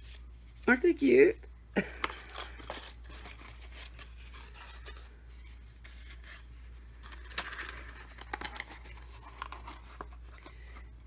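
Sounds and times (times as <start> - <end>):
low steady hum: 0.0 - 11.0
paper and cardboard rustling: 2.0 - 10.9.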